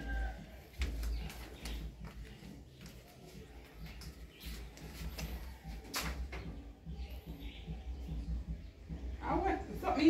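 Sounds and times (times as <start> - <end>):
footsteps on concrete: 0.0 - 9.9.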